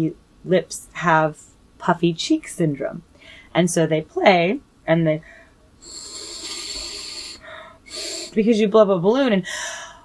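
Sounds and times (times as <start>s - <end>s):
breathy air through brass mouthpiece: 5.3s - 8.4s.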